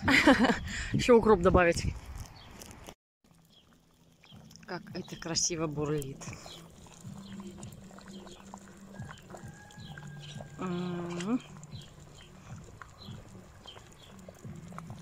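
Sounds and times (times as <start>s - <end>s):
soup bubbling: 3.2s - 15.0s.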